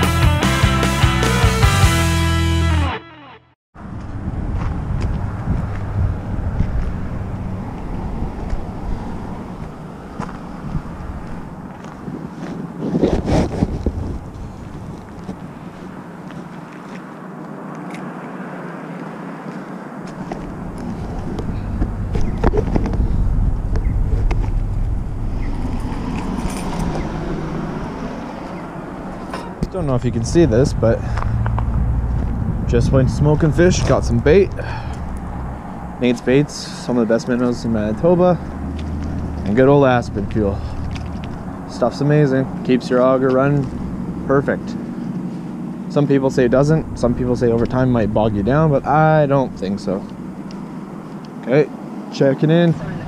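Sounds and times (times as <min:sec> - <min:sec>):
traffic rumble: 0:03.8 - 0:53.0.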